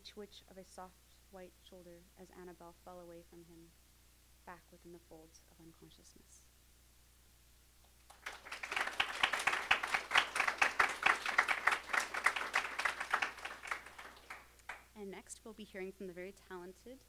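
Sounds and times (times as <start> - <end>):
audience applauding: 8.1 - 14.9.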